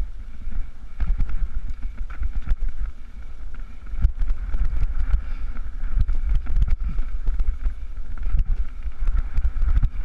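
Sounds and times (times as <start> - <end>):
tyres rolling over stony track: 0.0 - 10.0
wind buffeting microphone: 0.0 - 10.0
bike rattles and knocks: 0.4 - 10.0.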